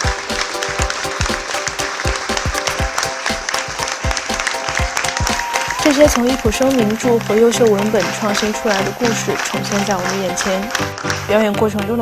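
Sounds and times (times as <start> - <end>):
audience applauding: 0.0 - 12.0
music playing: 0.0 - 12.0.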